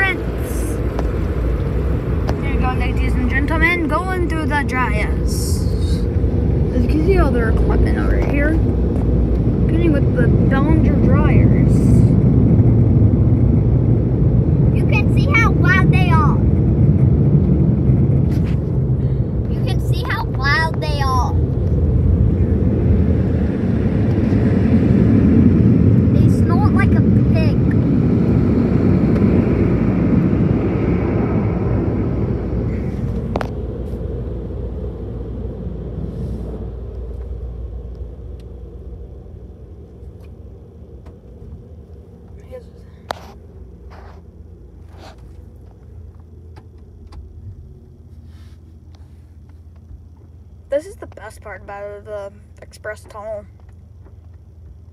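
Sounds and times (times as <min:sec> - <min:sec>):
car wash dryer blowers: 0:00.0 - 0:38.5.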